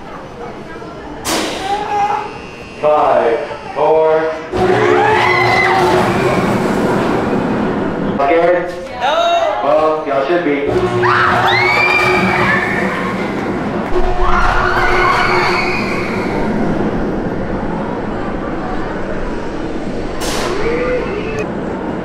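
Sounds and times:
train whooshing past: 0:04.0 - 0:08.9, 0:10.6 - 0:22.0
roller coaster rumble: 0:04.2 - 0:22.0
riders screaming: 0:04.7 - 0:06.6, 0:11.0 - 0:13.2.

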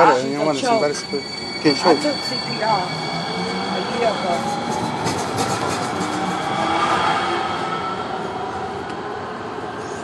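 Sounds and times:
train whine: 0:00.0 - 0:10.0.

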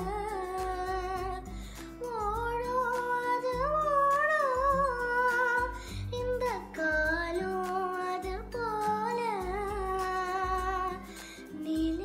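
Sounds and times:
boy singing: 0:00.0 - 0:12.0.

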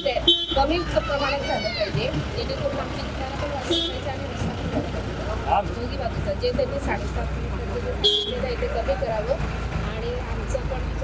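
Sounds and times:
road vehicles rumbling past: 0:00.0 - 0:11.0.

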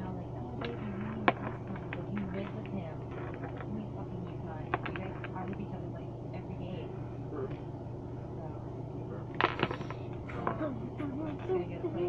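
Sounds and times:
steady low hum: 0:00.0 - 0:12.0
plastic figures knocking together: 0:09.4 - 0:10.6.

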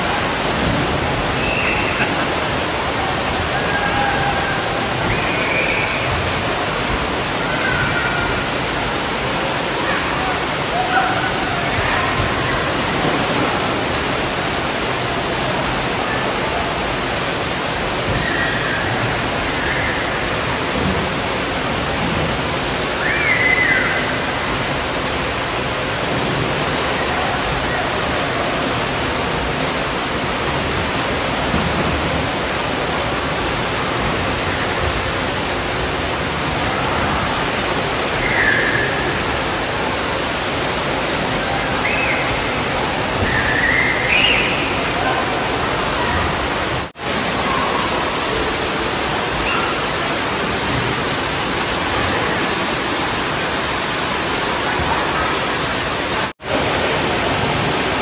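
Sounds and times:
water falling into a pool: 0:00.0 - 0:58.0.

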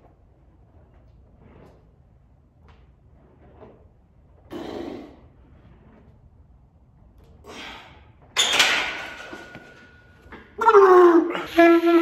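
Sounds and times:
loud forced exhale: 0:07.4 - 0:08.1.

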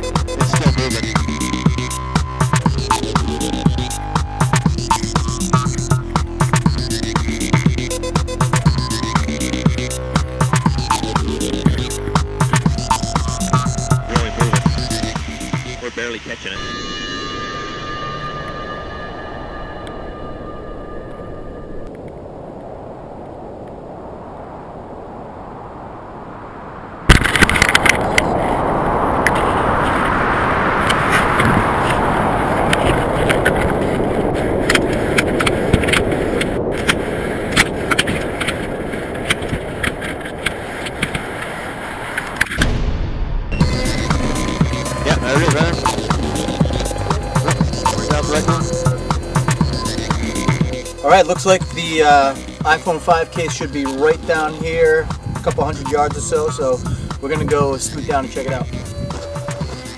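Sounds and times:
steady tones: 0:00.0 - 0:23.9, 0:41.3 - 0:59.9
loud rushing wind: 0:00.0 - 0:59.9.

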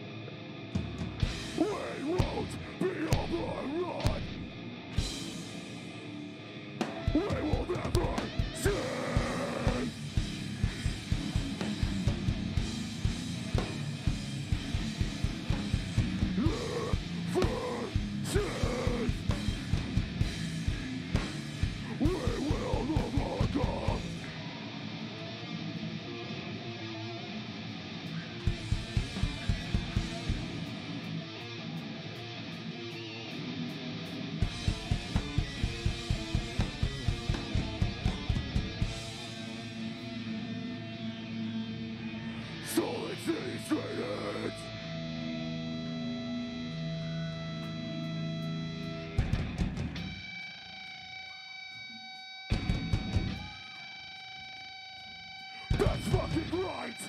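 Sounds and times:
distorted guitar: 0:00.0 - 0:57.0
shouted vocals: 0:01.5 - 0:04.5, 0:06.9 - 0:10.0, 0:16.3 - 0:19.3, 0:21.8 - 0:24.7, 0:42.1 - 0:44.8, 0:55.6 - 0:57.0
pounding drums: 0:28.5 - 0:30.6, 0:34.5 - 0:39.2.

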